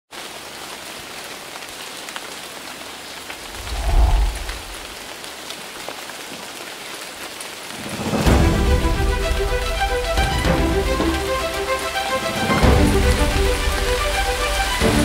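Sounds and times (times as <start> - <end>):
steady rain falling: 0.1 - 15.0
low rumble: 3.4 - 5.0.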